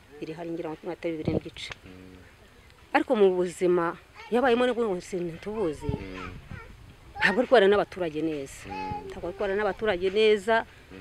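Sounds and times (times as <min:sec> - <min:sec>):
woman talking: 0:00.0 - 0:01.8, 0:02.9 - 0:06.0, 0:07.2 - 0:10.7.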